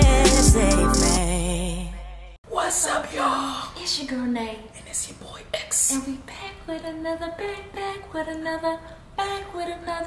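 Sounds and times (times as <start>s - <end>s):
intro music: 0.0s - 2.4s.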